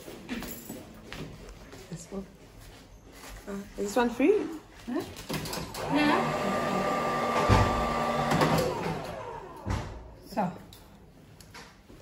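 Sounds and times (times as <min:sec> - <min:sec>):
hair dryer motor whine: 0:05.8 - 0:10.0.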